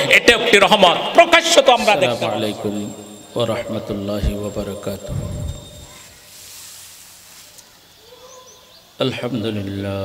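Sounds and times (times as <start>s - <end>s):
faint high bird chirps: 2.3s - 6.4s, 7.5s - 9.0s
soft hiss: 2.3s - 10.0s.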